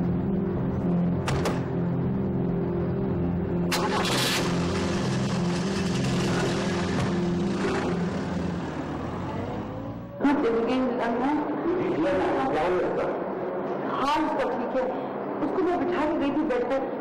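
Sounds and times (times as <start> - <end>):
low music drone: 0.0 - 15.4
car engine revving and passing: 3.7 - 10.2.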